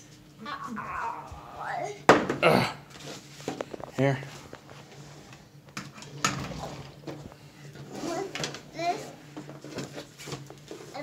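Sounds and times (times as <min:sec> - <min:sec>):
child voice sounds: 0:00.4 - 0:02.1, 0:08.0 - 0:09.2.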